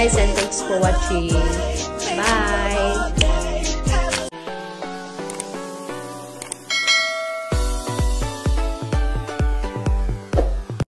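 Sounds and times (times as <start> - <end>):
notification bell chime: 6.7 - 8.0
electronic dance music: 6.9 - 9.1.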